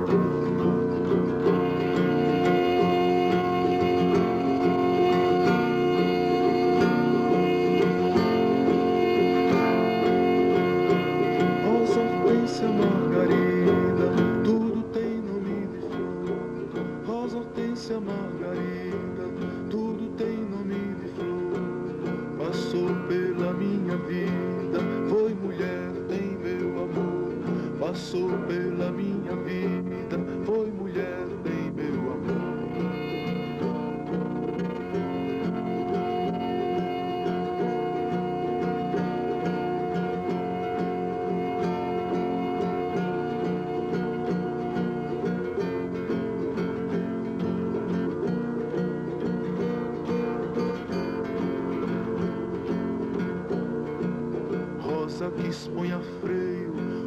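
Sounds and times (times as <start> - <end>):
acoustic guitar with small band: 0.0 - 57.0.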